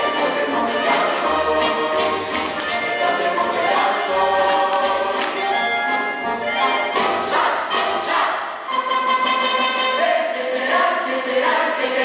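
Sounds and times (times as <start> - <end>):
instrumental accompaniment: 0.0 - 10.2
chorus singing: 0.0 - 12.0.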